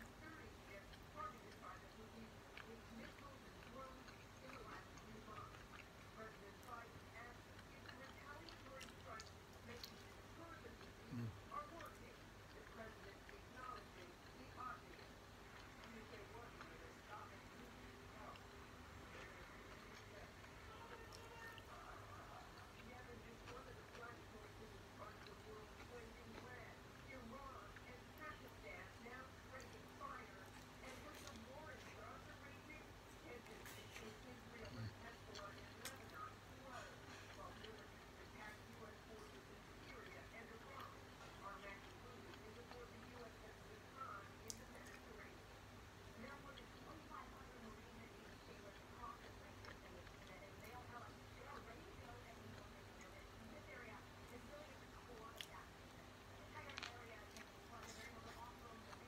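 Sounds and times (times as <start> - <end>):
faint background voices: 0.0 - 45.5
chewing mouth clicks: 44.4 - 45.0.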